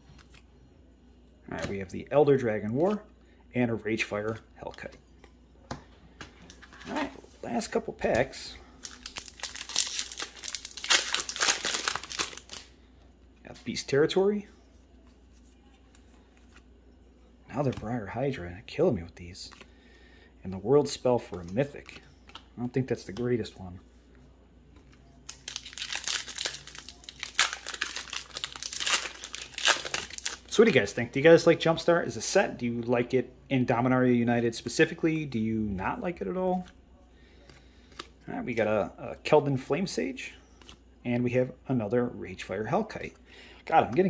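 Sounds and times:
foil wrapper crinkling: 8.8s - 12.7s, 25.2s - 30.6s.

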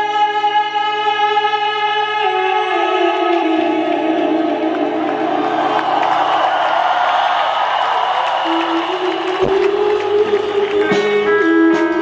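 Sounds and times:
crowd noise: 3.1s - 12.0s
electric guitar: 8.2s - 12.0s.

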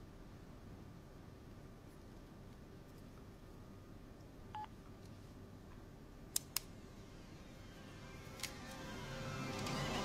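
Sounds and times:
sharp clicks: 6.3s - 6.7s.

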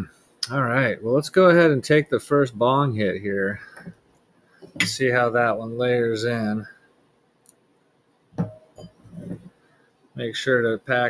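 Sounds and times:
soft handling sounds: 8.4s - 9.6s.

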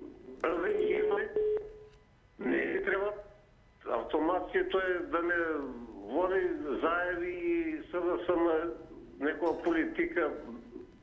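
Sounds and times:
person speaking over telephone: 0.4s - 1.7s, 3.9s - 10.7s.

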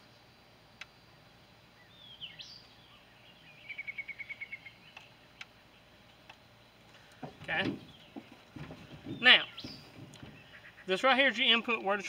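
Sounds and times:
birds chirping: 0.0s - 12.0s
bird trilling: 2.0s - 5.1s, 8.9s - 11.1s
faint clicks: 4.9s - 7.2s.

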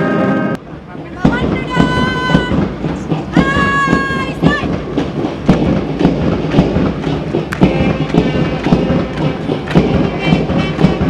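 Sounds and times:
brass notes: 0.0s - 0.7s, 7.4s - 11.0s
marching band drum beats: 0.6s - 11.0s.

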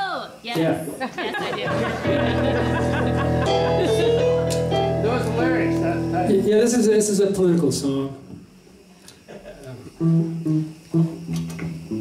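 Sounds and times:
acoustic guitar single notes: 1.7s - 6.5s.

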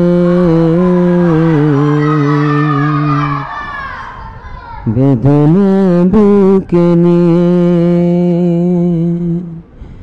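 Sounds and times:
person singing a long note: 0.0s - 3.9s, 4.8s - 9.8s.

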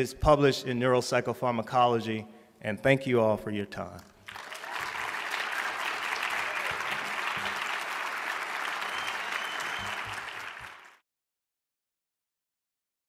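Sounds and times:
audience applauding: 4.3s - 11.0s.

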